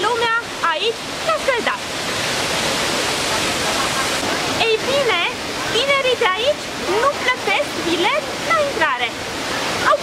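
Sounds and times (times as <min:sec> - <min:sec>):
waterfall rushing into pools: 0:00.0 - 0:10.0.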